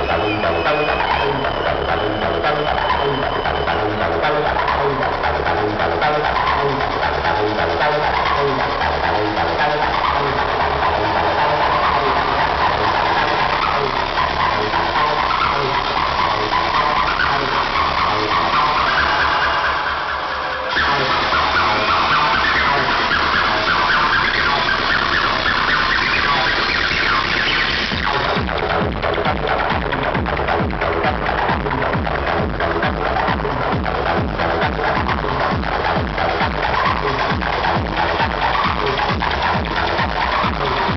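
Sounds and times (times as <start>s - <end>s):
acid rave music: 0.0s - 40.9s
rising siren-like synth: 14.9s - 28.4s
kick drum: 28.4s - 40.9s.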